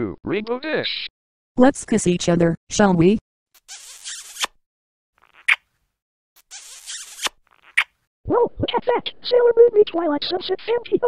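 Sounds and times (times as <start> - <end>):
airy kiss with lip pop: 3.6 - 4.6, 5.2 - 5.6, 6.4 - 7.9
kissing smacks: 3.6 - 4.6, 5.2 - 5.7, 6.4 - 7.9.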